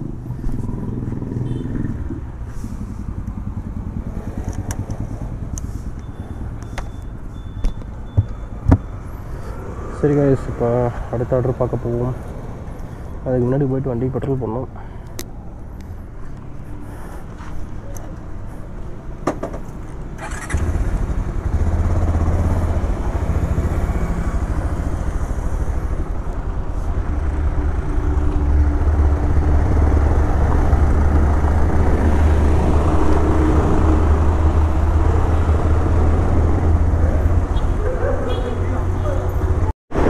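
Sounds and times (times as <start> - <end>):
motorcycle engine running: 0.0 - 6.6, 20.2 - 33.6.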